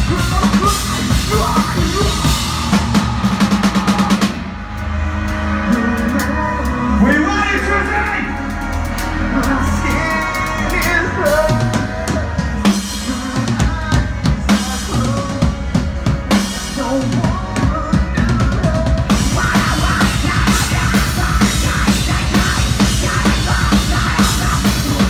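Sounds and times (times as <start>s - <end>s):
live heavy band playing: 0.0s - 25.0s.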